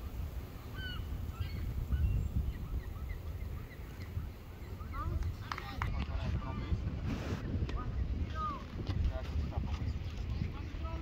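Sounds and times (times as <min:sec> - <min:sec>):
wind rumbling on microphone: 0:00.0 - 0:11.0
distant high-pitched calls: 0:00.6 - 0:05.1.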